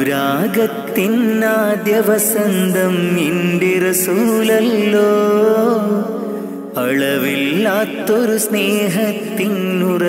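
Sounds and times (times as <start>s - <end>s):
person singing ornamented melody: 0.0s - 10.0s.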